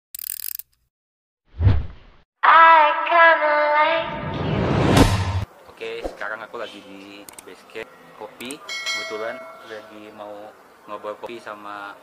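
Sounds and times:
low boom with swoosh: 4.1s - 5.4s.

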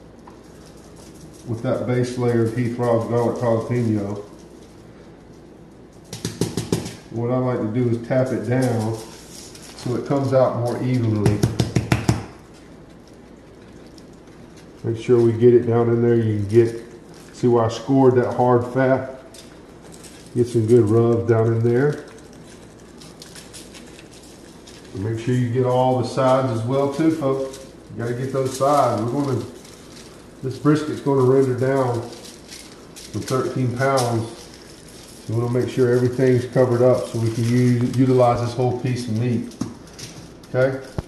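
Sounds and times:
granules pattering onto foil: 0.0s - 41.0s
seasoning bottle shaken and tapped: 6.1s - 7.2s, 11.1s - 12.5s
rub shaken from plastic shaker: 21.8s - 40.4s.

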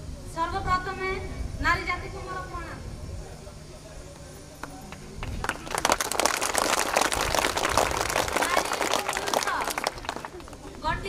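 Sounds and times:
audience applause: 4.9s - 10.8s.

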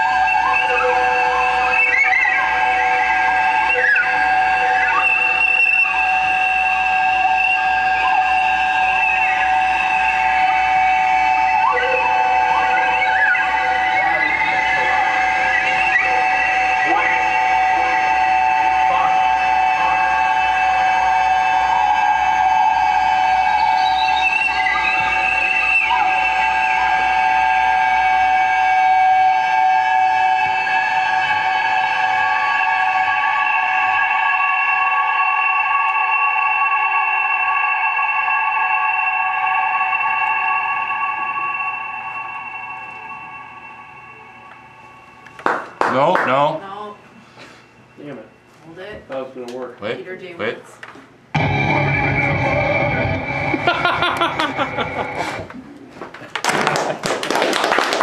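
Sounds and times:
sliding warbling pitches: 0.0s - 47.0s
high feedback-like tones: 0.0s - 49.7s, 51.3s - 55.8s
low hum: 34.8s - 48.6s.

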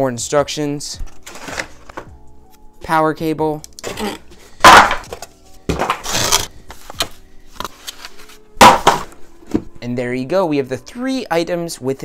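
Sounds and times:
faint background music: 0.0s - 12.0s
box lid shutting with thud: 8.6s - 9.7s.

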